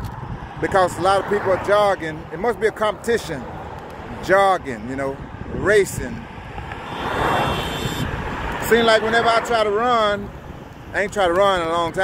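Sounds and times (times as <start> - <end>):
vehicle passing: 0.2 - 4.3, 5.2 - 11.1.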